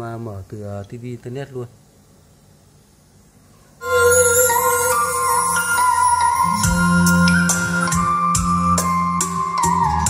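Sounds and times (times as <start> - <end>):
faint room hum: 0.0 - 8.6
music through loudspeakers: 3.8 - 10.0.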